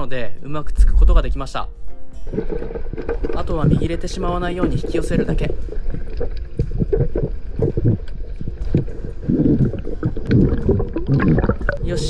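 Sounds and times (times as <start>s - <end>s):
low underwater rumbling: 2.2s - 12.0s.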